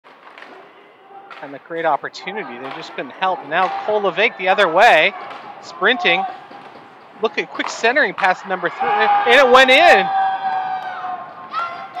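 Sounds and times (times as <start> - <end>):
crowd cheering: 0.2 - 12.0.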